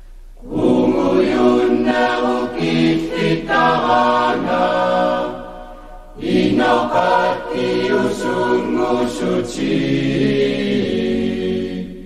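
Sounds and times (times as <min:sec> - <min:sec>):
choir singing a cappella: 0:00.4 - 0:12.0
singers breathing: 0:05.5 - 0:06.2.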